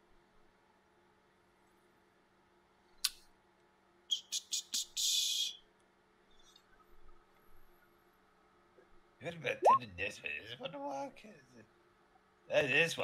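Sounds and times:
small clicks on microphone: 0:02.9 - 0:03.3.

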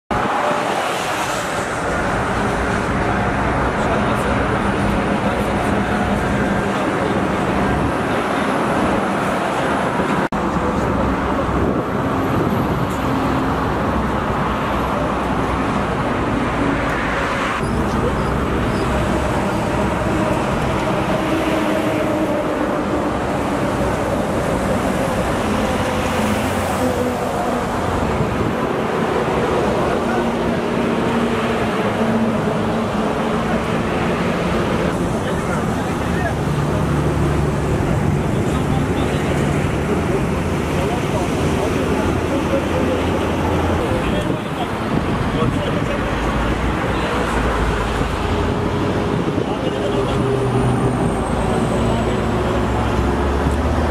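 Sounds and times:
motorway traffic noise: 0:00.1 - 0:53.9.

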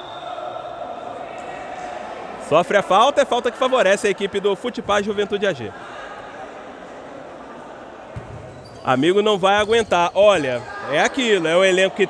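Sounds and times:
echoing indoor court noise: 0:00.0 - 0:12.0.

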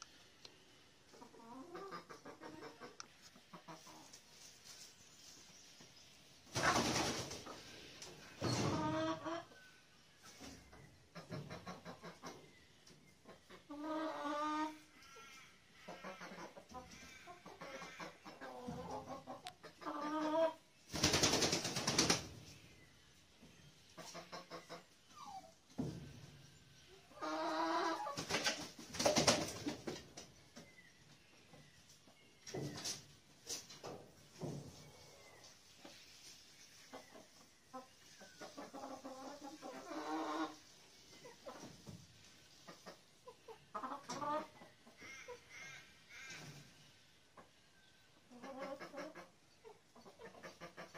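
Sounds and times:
hens clucking and calling: 0:01.1 - 0:04.8, 0:06.5 - 0:20.8, 0:23.8 - 0:50.9.

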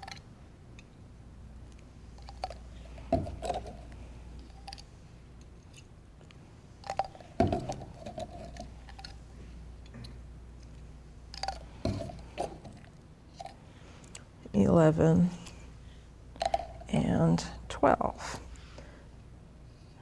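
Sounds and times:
plastic labware clicks and knocks: 0:06.9 - 0:09.1.

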